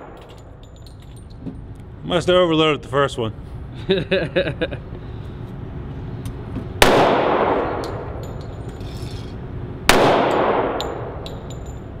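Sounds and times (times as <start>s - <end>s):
brass casings clinking: 7.6s - 12.0s
handgun shots echoing: 9.9s - 11.7s.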